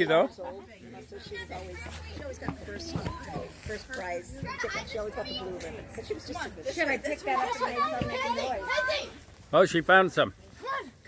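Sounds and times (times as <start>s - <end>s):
children and adults talking: 0.0s - 11.0s.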